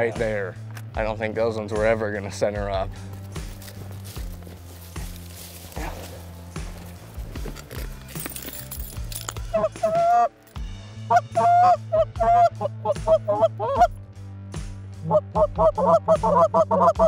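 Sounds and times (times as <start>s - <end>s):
background music with bass line: 0.0s - 17.0s
goose call honks: 11.1s - 13.9s, 15.0s - 17.0s.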